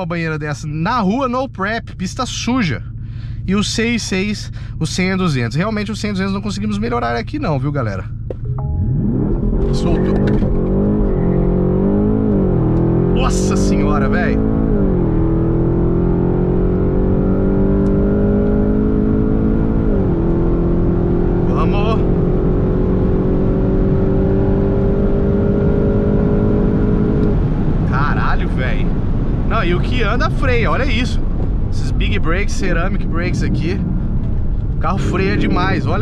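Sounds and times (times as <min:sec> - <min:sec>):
car engine at full throttle: 0:00.0 - 0:36.0
road and wind noise: 0:00.0 - 0:36.0.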